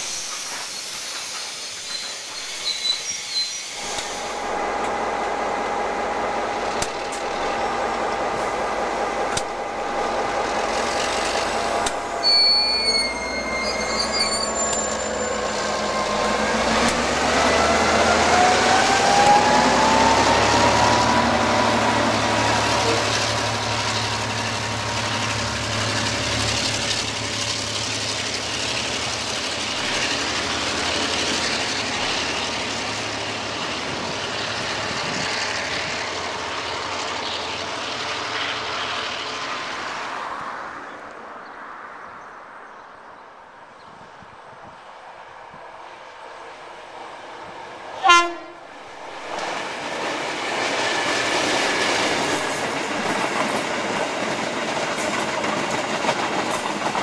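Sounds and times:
diesel locomotive engine whining: 0:00.0 - 0:40.7, 0:44.3 - 0:57.0
train running: 0:00.0 - 0:41.9, 0:43.9 - 0:57.0
brief high tone: 0:12.2 - 0:15.3.

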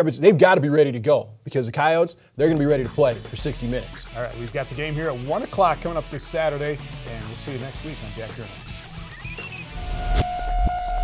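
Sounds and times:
high chiming tones: 0:08.9 - 0:09.7.

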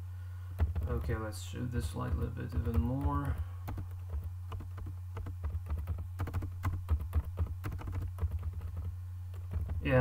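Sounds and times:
computer keyboard typing: 0:00.6 - 0:01.2, 0:01.9 - 0:10.0.

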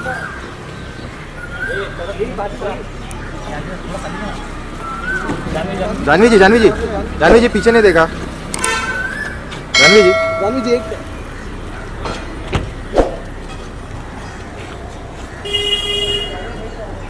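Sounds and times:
car horn honking: 0:08.6 - 0:09.1, 0:15.4 - 0:16.6.

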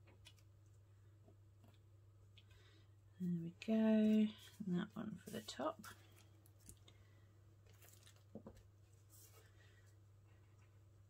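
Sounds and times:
low steady hum: 0:00.0 - 0:11.0
paper rustling and tapping: 0:07.6 - 0:08.7.

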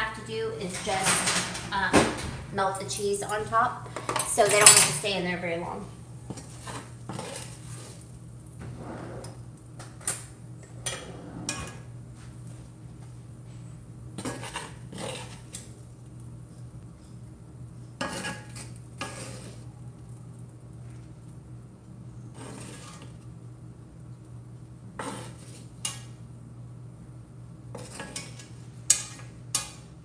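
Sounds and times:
steady low hum: 0:00.0 - 0:30.0
metal utensil scraping in skillet: 0:06.3 - 0:08.0, 0:14.2 - 0:15.7, 0:18.0 - 0:19.6, 0:22.3 - 0:23.2, 0:25.0 - 0:26.1, 0:27.7 - 0:29.8.

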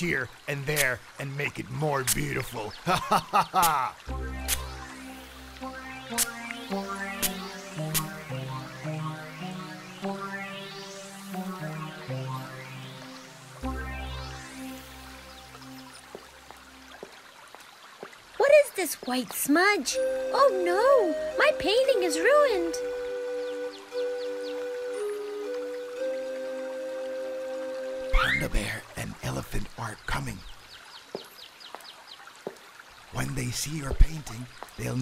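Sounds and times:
running water hiss: 0:00.0 - 0:35.0
cartoon synthesizer music: 0:02.9 - 0:15.8, 0:19.9 - 0:28.8
soft dripping clicks: 0:15.2 - 0:18.4, 0:30.7 - 0:33.0.

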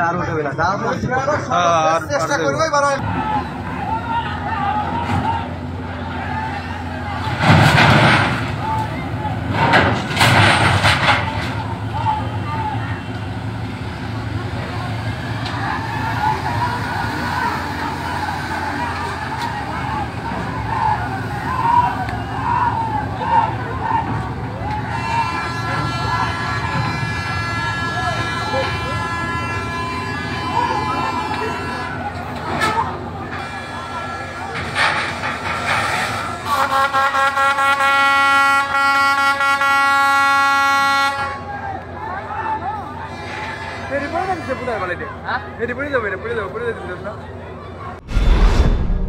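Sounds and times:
distant voices calling out: 0:08.1 - 0:36.6
horn blast: 0:24.7 - 0:32.2.

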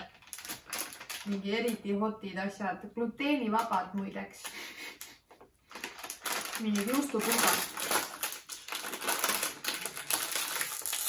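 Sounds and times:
plastic snack bag crackling: 0:00.0 - 0:01.8, 0:05.6 - 0:11.0.

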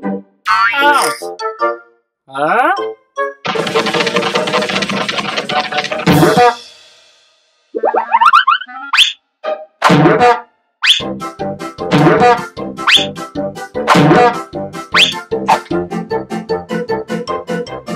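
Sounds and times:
busy cartoon music: 0:00.0 - 0:06.9, 0:07.8 - 0:17.9
bouncy musical hits: 0:09.8 - 0:10.4, 0:11.8 - 0:13.2, 0:13.8 - 0:15.8.

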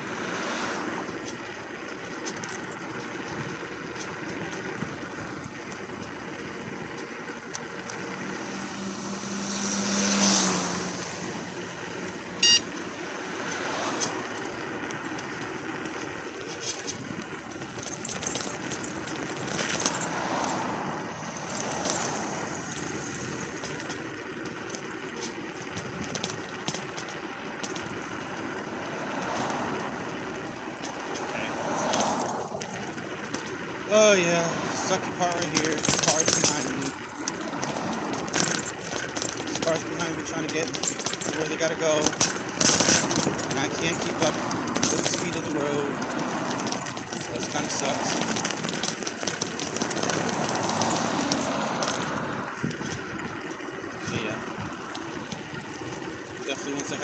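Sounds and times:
cars passing: 0:00.0 - 0:57.0
road traffic: 0:00.0 - 0:57.0
loud high beep: 0:12.4 - 0:12.7.

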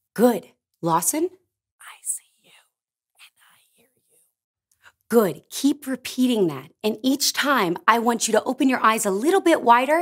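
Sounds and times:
man whispering: 0:01.8 - 0:04.1.

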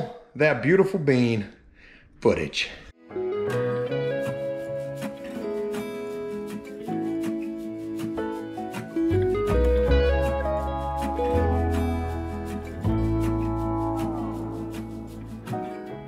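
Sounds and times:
plucked guitar notes: 0:03.0 - 0:16.0
low bass: 0:09.2 - 0:15.6.

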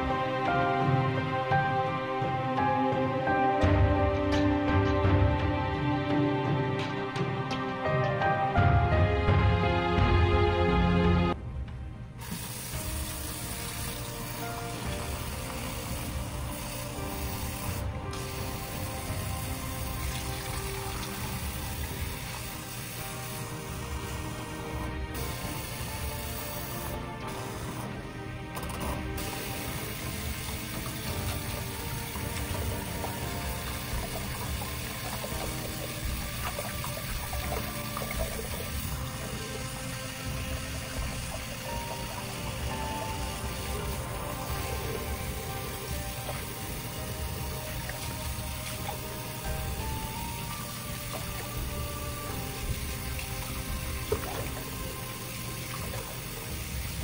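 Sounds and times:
faucet running into a sink: 0:12.2 - 0:27.6, 0:28.8 - 0:57.0.

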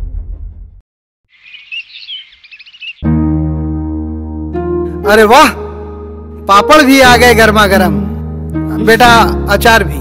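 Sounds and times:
small birds chirping: 0:01.3 - 0:03.1.

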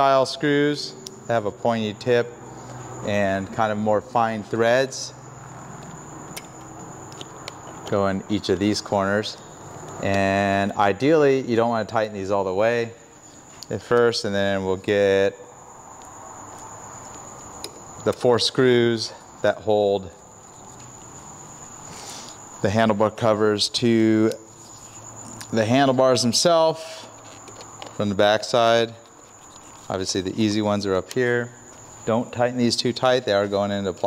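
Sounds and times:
faint high whine: 0:00.0 - 0:34.0.

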